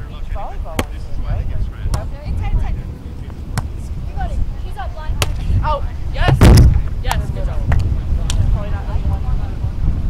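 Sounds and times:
players calling: 0.0s - 8.8s
wind buffeting microphone: 0.0s - 10.0s
volleyball hit slap: 1.9s - 2.1s, 3.5s - 3.8s, 5.2s - 5.5s, 6.3s - 8.4s.

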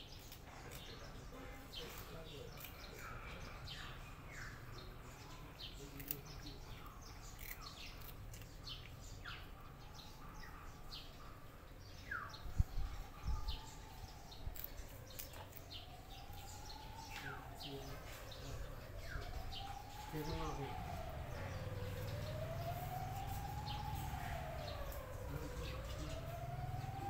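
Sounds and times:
birds chirping: 0.0s - 27.0s
faint siren wailing: 0.2s - 27.0s.

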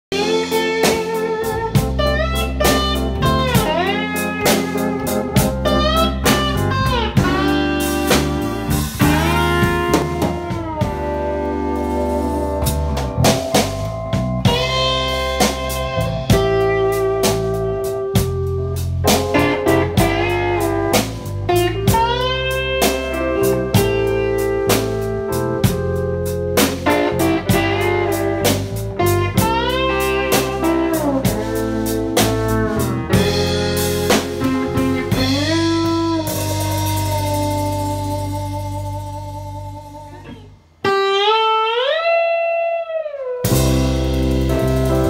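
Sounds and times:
drum kit: 0.0s - 41.2s, 43.4s - 45.0s
sustained keyboard chords: 0.1s - 41.1s, 43.4s - 45.0s
electric guitar solo: 0.1s - 45.0s.

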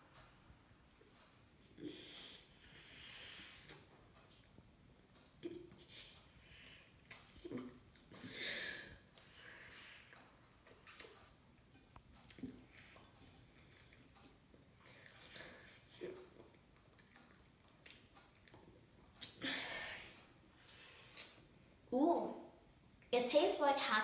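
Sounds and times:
faint chewing of bread: 0.9s - 19.5s.

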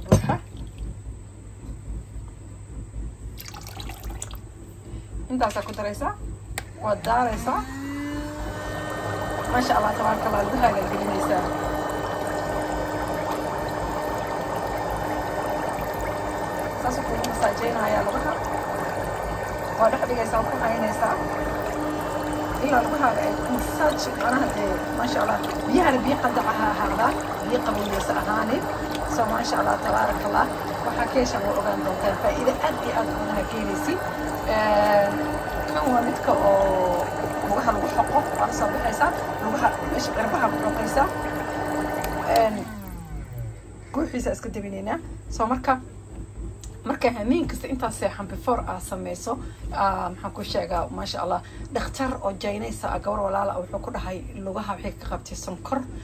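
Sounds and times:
foot spa hum: 0.0s - 56.0s
water bubbling and churning: 3.4s - 4.4s, 8.3s - 43.4s.

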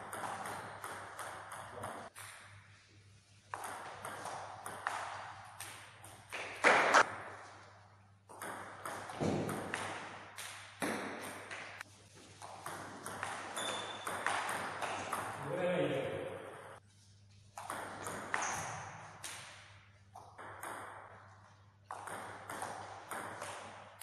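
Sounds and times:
table tennis ball pinging: 0.0s - 2.7s, 3.5s - 7.4s, 8.3s - 15.4s, 17.6s - 24.0s.

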